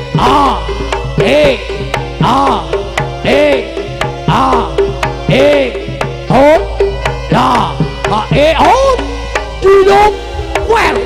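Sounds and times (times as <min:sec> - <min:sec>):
percussion music with hand drums: 0:00.0 - 0:11.0.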